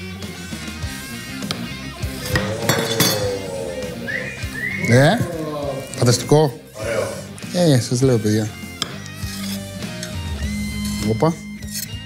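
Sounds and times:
background music: 0.0s - 12.0s
knife clinking on marble board: 2.2s - 3.6s.

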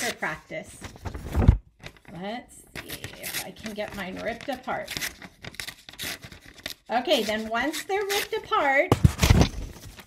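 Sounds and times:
paper tearing: 2.8s - 10.0s.

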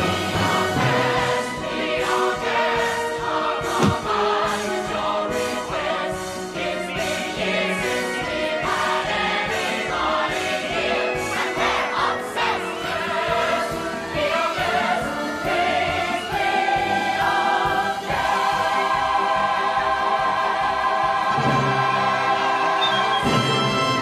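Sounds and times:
choir singing: 0.0s - 24.0s
low orchestral hits: 3.6s - 4.4s
orchestra playing: 21.3s - 24.0s.

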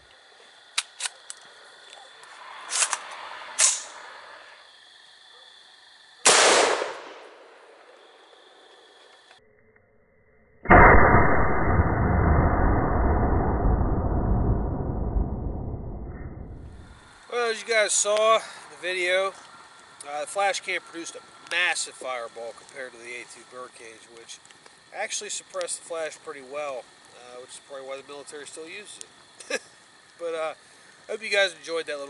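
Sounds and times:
pistol shot: 3.6s - 4.0s, 6.2s - 7.6s
slowed-down gunshot boom: 6.3s - 7.5s, 10.7s - 17.0s.

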